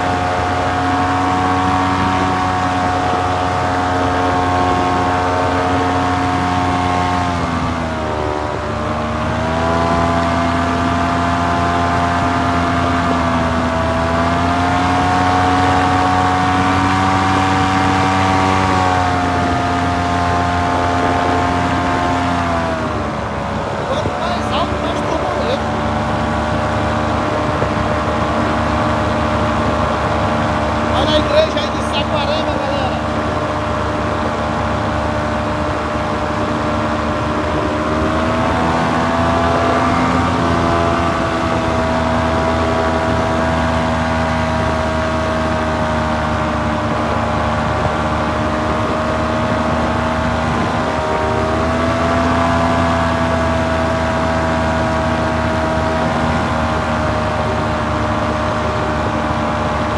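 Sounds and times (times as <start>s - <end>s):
paramotor engine and propeller: 0.0s - 59.9s.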